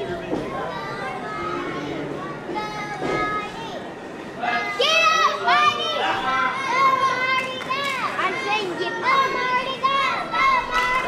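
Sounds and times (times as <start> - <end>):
children shouting and cheering: 0.5 - 11.0.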